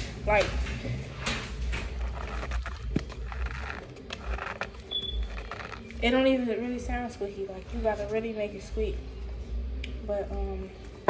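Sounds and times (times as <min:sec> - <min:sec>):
powder crackling and rustling: 0:01.8 - 0:06.2.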